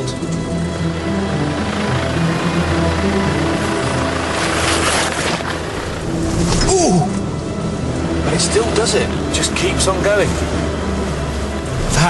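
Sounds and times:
background music: 0.0s - 12.0s
diesel engine rumble: 0.0s - 12.0s.

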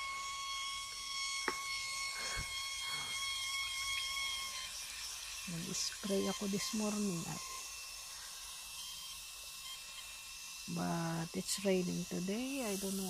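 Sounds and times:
hose water running into bucket: 0.8s - 13.0s.

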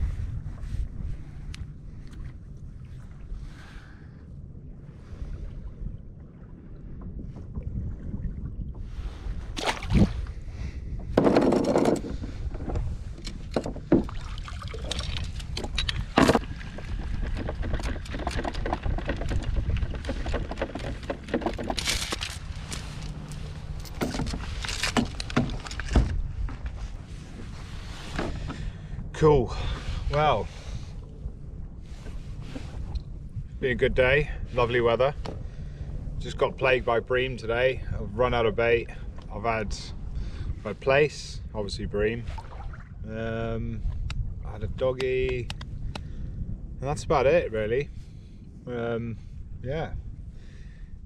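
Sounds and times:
water around a kayak hull: 0.0s - 51.0s
wind on microphone: 0.0s - 51.0s
anchor chain clinking: 20.0s - 26.1s.

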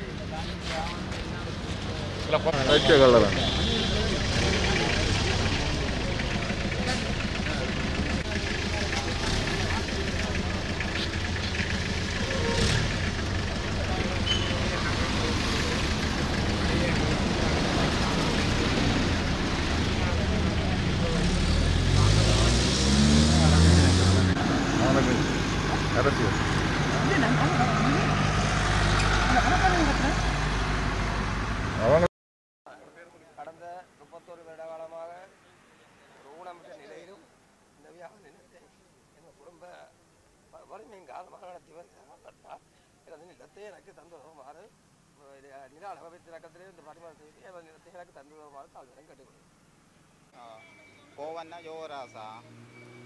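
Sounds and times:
men's voices: 0.0s - 12.2s
vehicle engine running: 0.0s - 31.8s
road traffic: 0.0s - 32.1s, 32.7s - 53.0s
engine pulling away: 1.3s - 32.1s, 51.9s - 53.0s.

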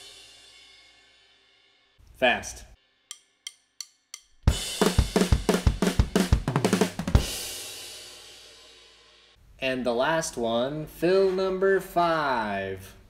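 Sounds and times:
drumstick clicks: 3.1s - 4.5s
drum kit playing fast beat: 4.2s - 9.1s.

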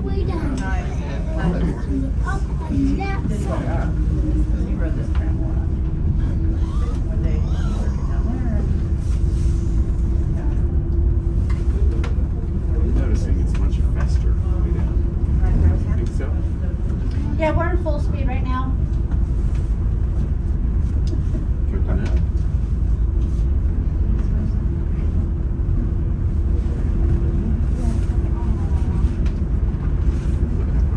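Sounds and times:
voices: 0.0s - 18.8s
cable car cabin rumble and hum: 0.0s - 30.9s.

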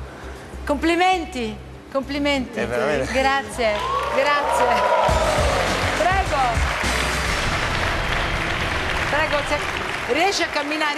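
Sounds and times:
studio audience applauding: 3.6s - 10.9s.

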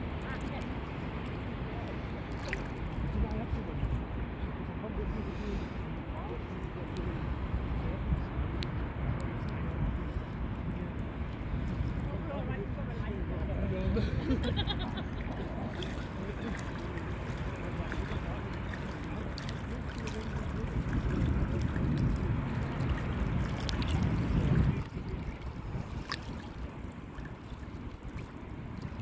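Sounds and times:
sea water sloshing and splashing: 0.0s - 3.7s, 14.0s - 29.0s
wind rumbling on microphone: 0.0s - 29.0s.

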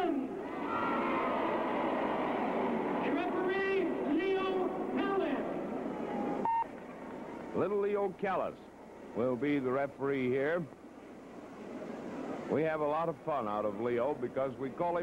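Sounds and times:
crowd cheering and applauding: 0.5s - 3.4s
brief tone: 6.2s - 6.7s.

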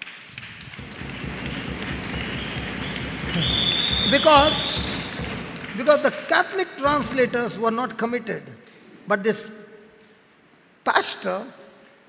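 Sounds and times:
audience clapping: 0.0s - 7.4s.

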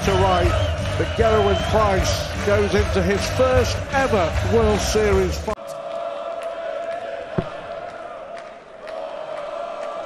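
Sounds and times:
crowd chanting in unison: 5.6s - 10.0s
sharp thud: 7.4s - 7.7s.

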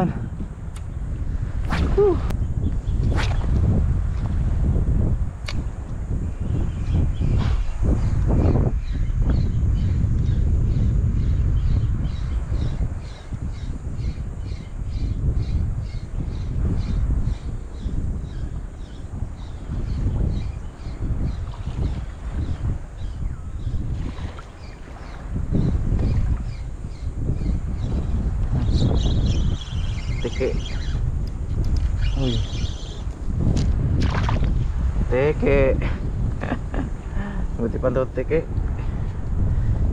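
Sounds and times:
wind buffeting microphone: 0.0s - 39.9s.

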